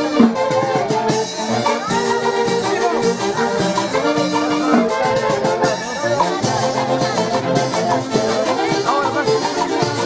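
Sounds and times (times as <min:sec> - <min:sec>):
trumpet: 0:00.0 - 0:10.0
violin: 0:00.0 - 0:10.0.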